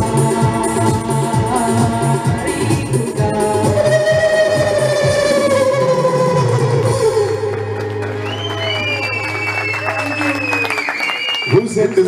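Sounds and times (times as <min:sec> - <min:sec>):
woman singing: 0:00.0 - 0:07.9
audience clapping and whistling: 0:07.4 - 0:12.0.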